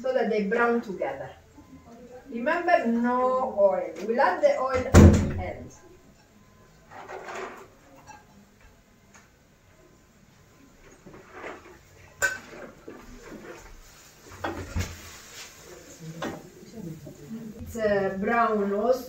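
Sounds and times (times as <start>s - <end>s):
cookware clattering: 6.1s - 8.8s, 11.1s - 13.6s
wooden spoon stirring in frying pan: 10.7s - 18.2s.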